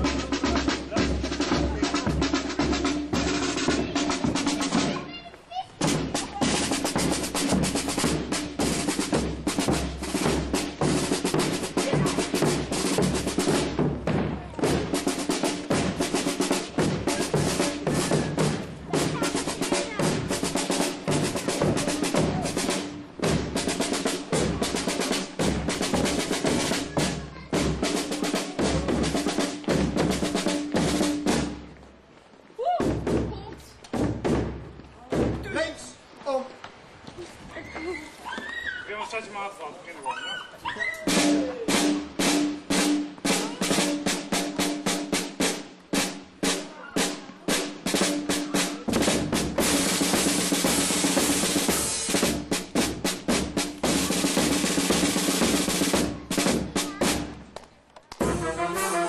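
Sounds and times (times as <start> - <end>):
bass drum beats: 0.0 - 5.1, 5.8 - 31.8, 32.6 - 35.7, 41.1 - 57.6
snare drum rolls: 0.0 - 31.8, 32.6 - 36.0, 40.9 - 59.0.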